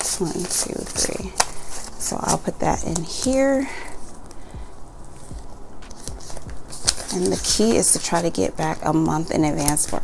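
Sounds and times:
banknotes and plastic rustling: 0.0 - 10.0.

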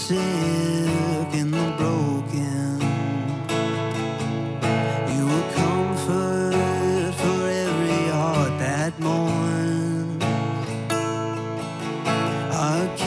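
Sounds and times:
man singing worship song: 0.0 - 3.5, 4.9 - 10.7, 12.3 - 13.0
acoustic guitar strumming: 0.0 - 13.0.

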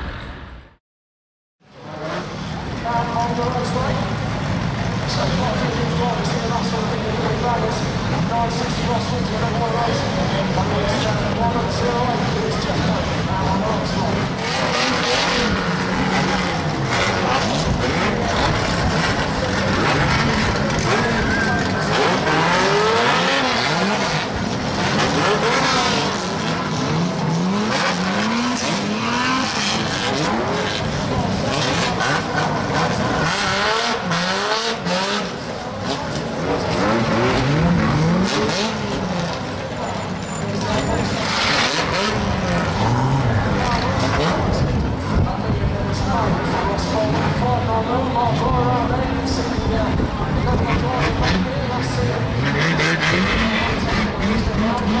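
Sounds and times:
racing car engines revving: 1.6 - 55.0.

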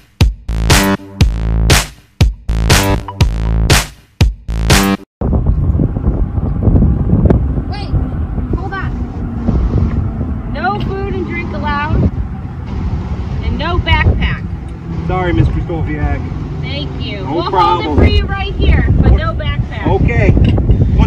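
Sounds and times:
wind rumbling on microphone: 5.2 - 21.0
people talking: 7.7 - 9.0, 10.5 - 12.1, 13.4 - 14.4, 15.1 - 21.0.

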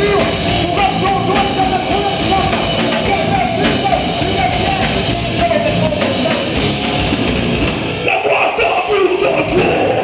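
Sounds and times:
distorted electric guitar: 0.0 - 10.0
drum kit: 0.0 - 10.0.

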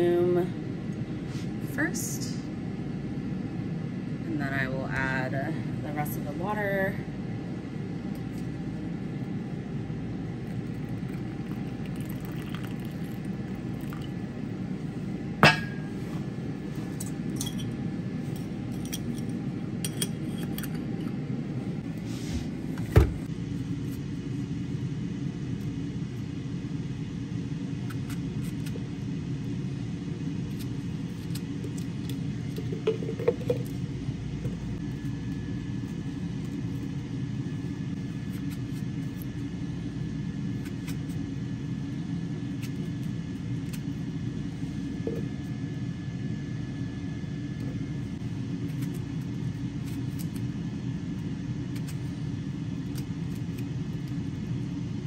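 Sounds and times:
steady low rumble: 0.0 - 55.0.

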